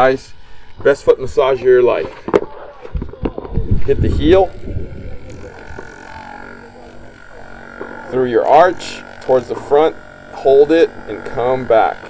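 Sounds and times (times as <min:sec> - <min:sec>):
massage gun motor buzzing: 0:00.0 - 0:12.0.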